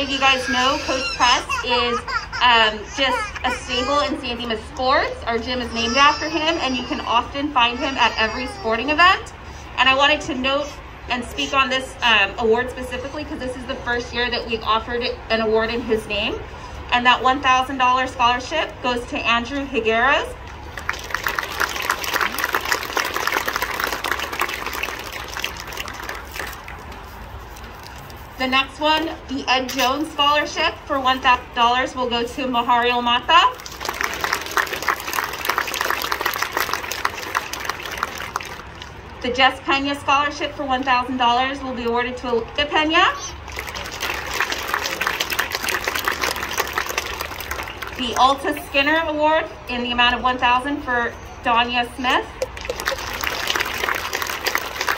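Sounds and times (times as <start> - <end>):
small audience applauding: 20.8 - 26.8, 33.6 - 38.8, 43.5 - 48.2, 52.4 - 54.9.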